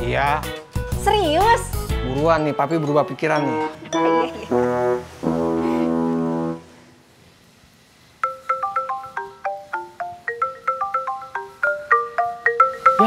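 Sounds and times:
brass music sting: 0:04.0 - 0:06.9
marimba phone ringtone: 0:08.2 - 0:13.0.

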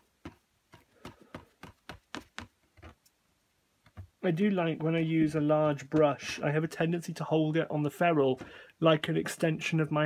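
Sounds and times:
paintbrush tapping: 0:00.0 - 0:03.0.

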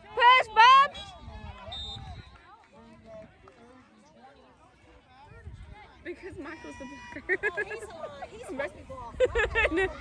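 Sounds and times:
faint referee's whistle blast: 0:00.9 - 0:02.4.

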